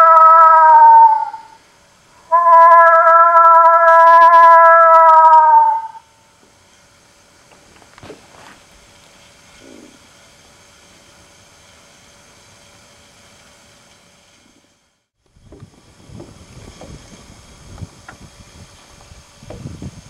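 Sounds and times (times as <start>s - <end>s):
boat motor humming: 0.0s - 20.0s
wind buffeting microphone: 15.4s - 20.0s.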